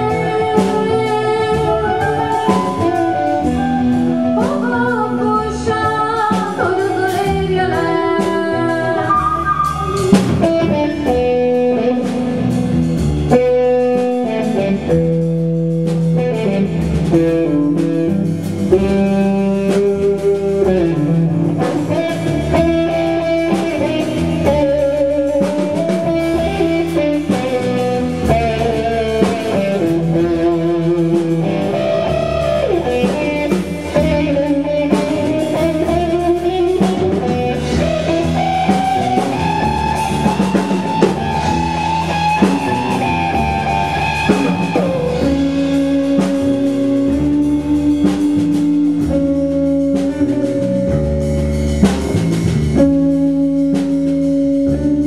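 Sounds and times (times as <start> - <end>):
bass guitar: 0.0 - 55.0
drum kit: 0.0 - 55.0
electric guitar: 0.0 - 55.0
wavering melody line: 9.0 - 11.0.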